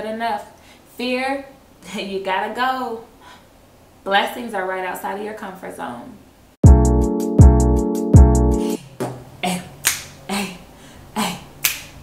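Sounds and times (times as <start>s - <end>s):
music sting with deep bass: 6.6s - 8.7s
finger snaps: 9.8s - 10.1s, 11.6s - 12.0s.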